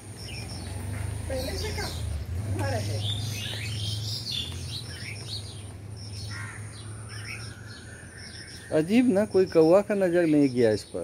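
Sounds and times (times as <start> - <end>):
small birds chirping: 0.0 - 11.0.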